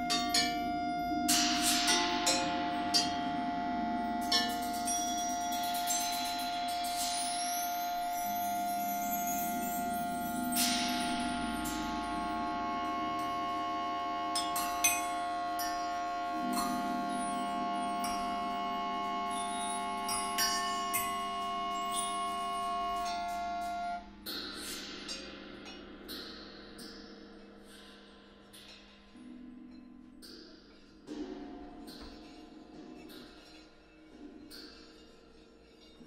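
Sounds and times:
struck metal and chimes: 0.0 - 24.0
clarinet and reeds holding tones: 0.0 - 24.1
low drone: 9.4 - 24.0.

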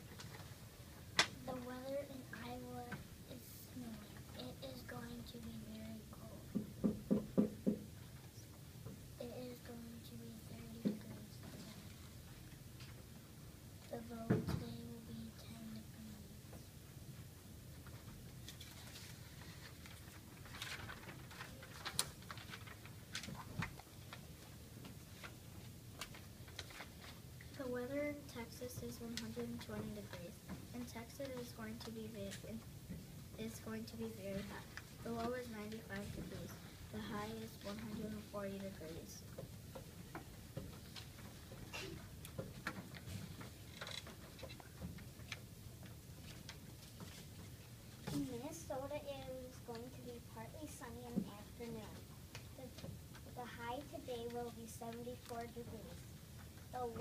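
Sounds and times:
low steady room hum: 0.0 - 57.0
paper rustling on a tabletop: 18.4 - 24.3, 26.0 - 27.2.

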